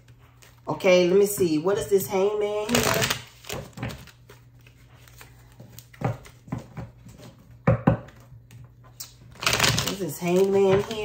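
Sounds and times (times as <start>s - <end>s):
cards being shuffled: 2.6s - 6.6s, 9.0s - 11.0s.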